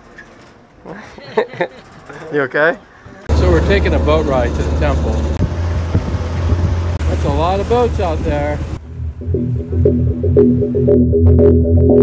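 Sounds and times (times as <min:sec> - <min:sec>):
motorboat engine droning: 0:03.3 - 0:11.1
wind buffeting microphone: 0:05.1 - 0:08.8.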